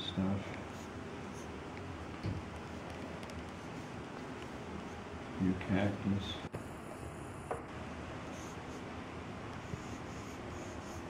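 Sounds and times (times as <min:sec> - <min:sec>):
pencil scratching on paper: 0:00.6 - 0:01.6, 0:02.6 - 0:05.1, 0:08.3 - 0:08.9, 0:09.5 - 0:11.0.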